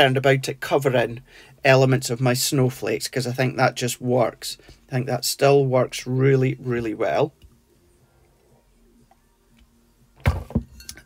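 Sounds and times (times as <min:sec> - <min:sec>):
knock: 0:10.2 - 0:10.8
plastic tub clattering on desk: 0:10.2 - 0:10.8.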